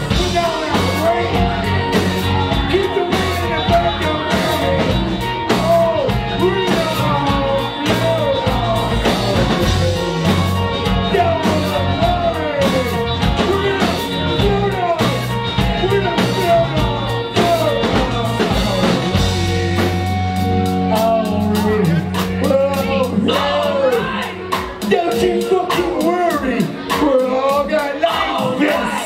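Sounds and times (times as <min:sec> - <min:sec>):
electric guitar: 0:00.0 - 0:25.2
drum kit: 0:00.0 - 0:29.0
person singing: 0:00.0 - 0:29.0.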